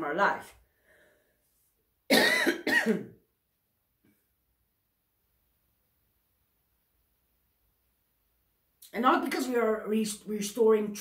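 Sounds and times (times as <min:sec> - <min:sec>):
woman coughing: 0:02.1 - 0:03.2.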